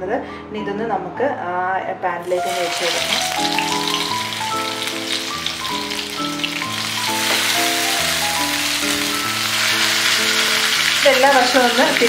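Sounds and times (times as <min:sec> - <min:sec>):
background music with held notes: 0:00.0 - 0:12.0
chicken sizzling in oil: 0:02.2 - 0:12.0.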